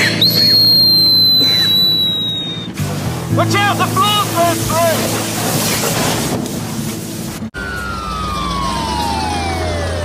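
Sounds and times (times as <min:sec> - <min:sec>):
ambulance siren wailing: 0:07.6 - 0:10.0.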